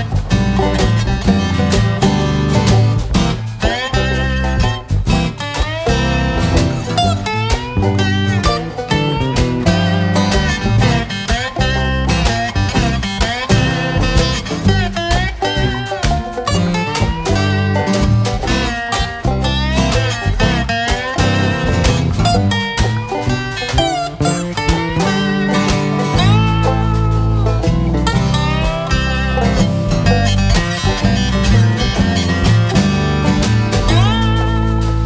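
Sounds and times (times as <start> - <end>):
guitar lead with sliding notes: 0.0 - 35.0
stepping bass line: 0.0 - 35.0.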